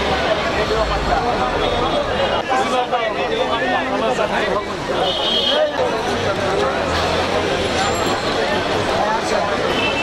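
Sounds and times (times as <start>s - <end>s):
crowd of people talking: 0.0s - 10.0s.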